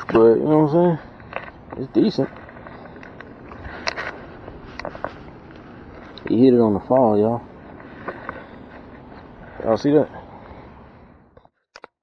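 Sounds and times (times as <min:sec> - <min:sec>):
steady background hiss: 0:00.0 - 0:11.4.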